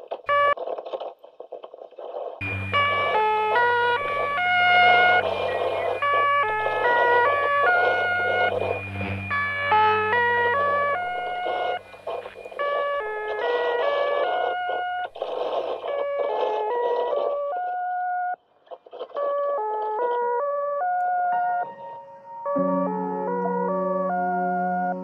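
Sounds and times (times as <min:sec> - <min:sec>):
low hum: 0:02.4 - 0:14.8
electronic beeping melody: 0:02.4 - 0:15.2, 0:20.7 - 0:25.0.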